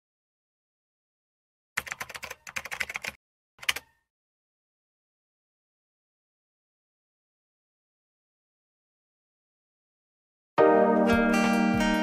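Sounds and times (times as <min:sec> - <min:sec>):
keyboard key clicks: 0:01.8 - 0:04.0.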